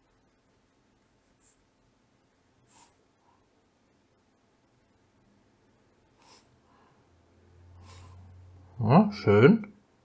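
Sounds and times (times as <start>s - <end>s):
pen strokes on paper: 1.2s - 1.8s, 2.6s - 3.4s.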